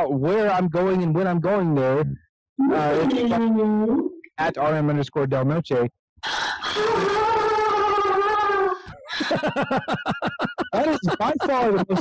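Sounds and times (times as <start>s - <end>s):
person squealing: 2.6s - 4.2s, 6.2s - 9.0s.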